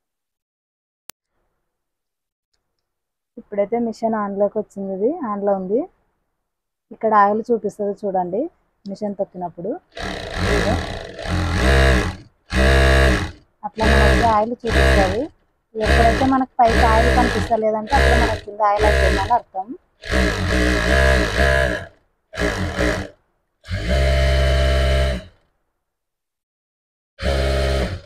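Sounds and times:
sewing machine running: 0:10.0 - 0:19.4, 0:20.0 - 0:25.3, 0:27.2 - 0:28.0.

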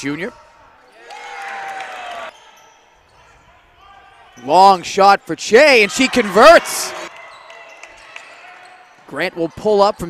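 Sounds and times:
crowd noise in a gym: 0:00.0 - 0:10.0.

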